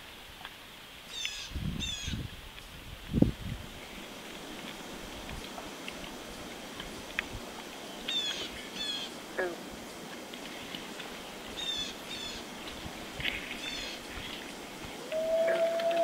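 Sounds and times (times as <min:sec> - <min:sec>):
faint steady background noise: 0:00.0 - 0:16.0.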